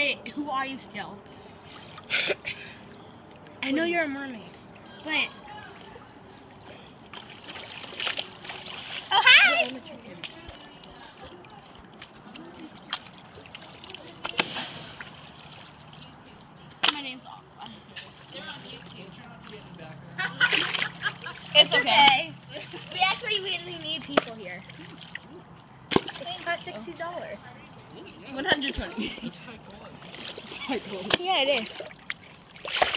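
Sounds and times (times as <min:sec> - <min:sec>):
water splashing in pool: 0:04.6 - 0:17.2, 0:20.4 - 0:27.6, 0:28.7 - 0:32.9
swimmer splashing in water: 0:07.1 - 0:16.1.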